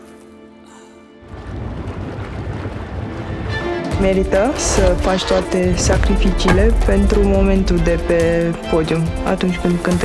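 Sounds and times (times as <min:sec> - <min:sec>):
music: 0:00.0 - 0:01.7, 0:02.8 - 0:10.0
noisy low rumble: 0:04.0 - 0:09.2.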